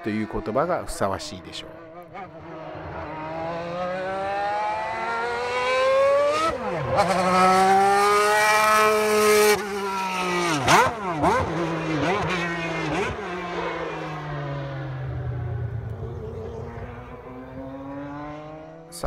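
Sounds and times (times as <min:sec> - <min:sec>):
racing car engine at high revs: 0:01.8 - 0:19.0.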